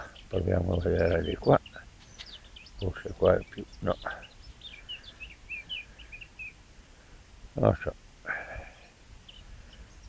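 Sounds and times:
faint bird chirps: 0.0 - 10.0.

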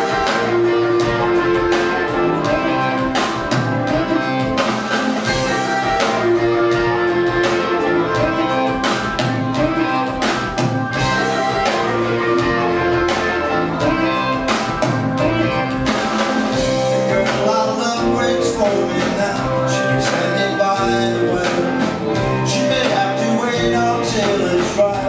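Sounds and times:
drum beat: 0.0 - 25.0
electric guitars: 0.0 - 25.0
rock band playing live: 0.0 - 25.0.

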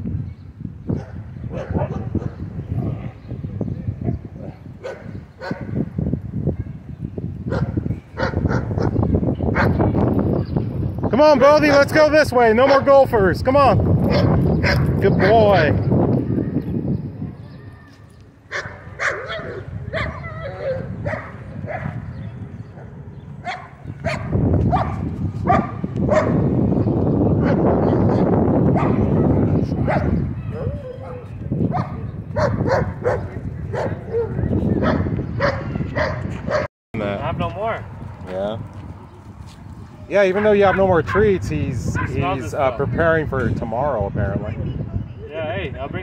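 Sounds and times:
dogs barking: 0.9 - 5.9, 7.4 - 9.9, 12.6 - 12.9, 14.1 - 15.4, 18.5 - 26.5, 27.4 - 36.7, 40.6 - 41.3, 41.9 - 42.3
voices talking: 7.8 - 24.6, 25.8 - 38.8, 39.6 - 46.0.

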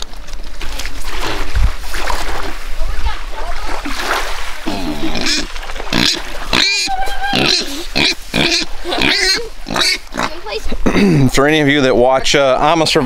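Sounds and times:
piglet squealing: 4.7 - 10.4.

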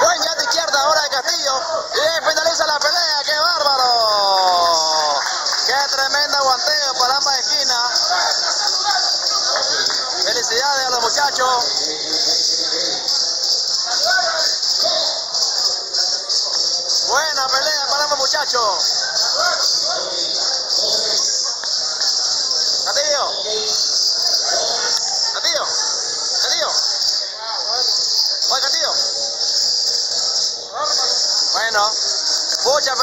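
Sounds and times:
faint background voices: 0.0 - 33.0
high-pitched hiss: 0.0 - 33.0.

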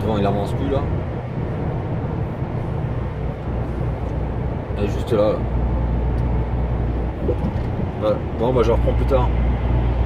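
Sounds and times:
diesel engine drone: 0.0 - 10.0
tyre and road noise: 0.0 - 10.0.

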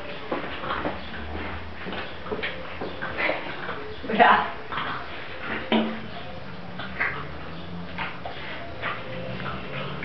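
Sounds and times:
puppy whining: 2.0 - 10.0.

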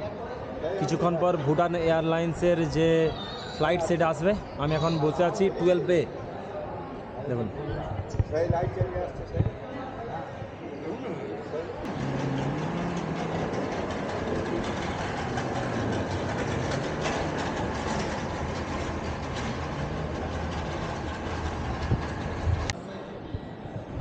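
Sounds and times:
steady rush of hall noise: 0.0 - 24.0
indistinct voices: 11.8 - 24.0.

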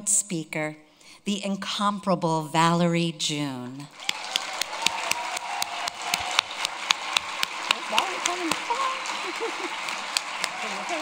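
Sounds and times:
audience applauding: 3.9 - 11.0
close sharp hand claps: 4.0 - 11.0.

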